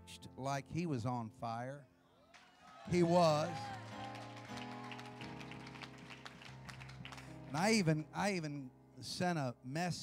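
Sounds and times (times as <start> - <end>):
soft keyboard chords: 2.9 - 10.0.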